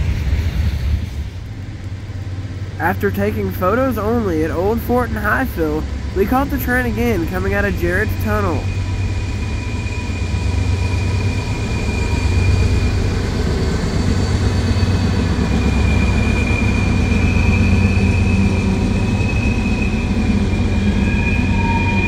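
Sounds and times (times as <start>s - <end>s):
diesel locomotive rumble: 0.0s - 22.0s
freight cars passing: 0.0s - 22.0s
high-pitched squeal: 2.8s - 22.0s.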